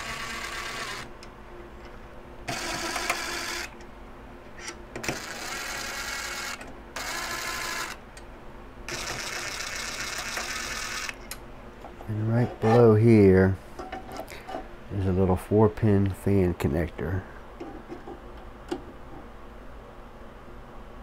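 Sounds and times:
cordless drill running: 0.0 - 1.1.

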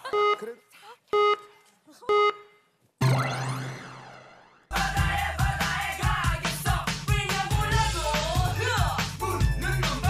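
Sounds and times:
electronic countdown beeps: 0.0 - 0.4, 1.2 - 1.5, 2.1 - 4.4.

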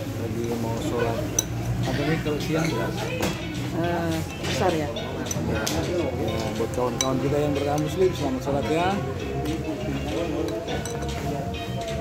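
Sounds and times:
chopsticks clinking ceramic bowl: 10.1 - 12.0.

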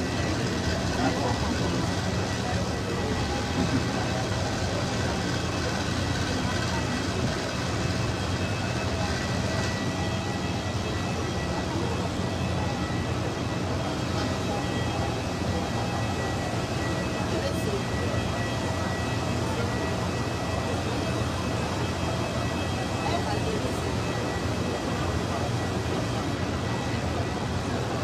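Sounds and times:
jet airliner engine drone and whine: 0.0 - 28.0
murmur of voices: 0.0 - 28.0.

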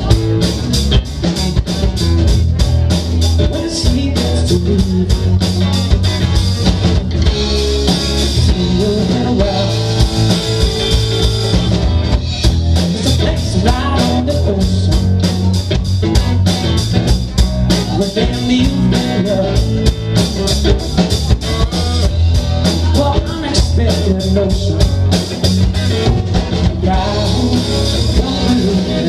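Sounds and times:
drum kit beat: 0.0 - 29.0
electric bass: 0.0 - 29.0
electric guitar: 0.0 - 29.0.

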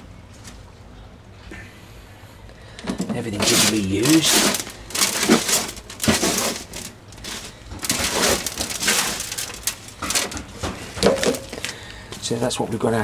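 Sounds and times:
hands rustling through compost: 3.0 - 12.4.

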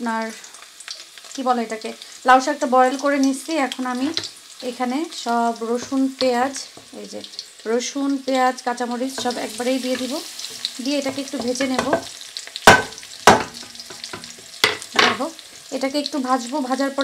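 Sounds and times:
garlic frying in hot oil: 0.0 - 17.0
sharp knocks: 12.7 - 14.8.

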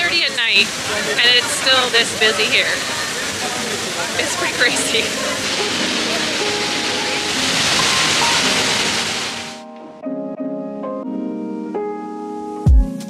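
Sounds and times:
murmur of crowd: 0.0 - 9.3
fountain water rushing: 0.0 - 9.6
soft keyboard music: 4.2 - 13.0.

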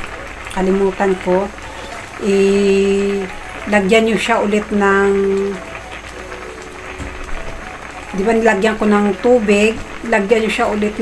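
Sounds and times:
broth simmering and bubbling: 0.0 - 11.0.

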